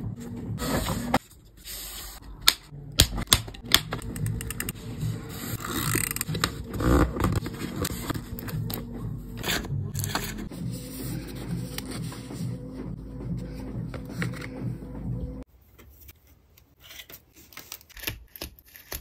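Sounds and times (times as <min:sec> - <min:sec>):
soft background music: 0:02.3 - 0:15.5.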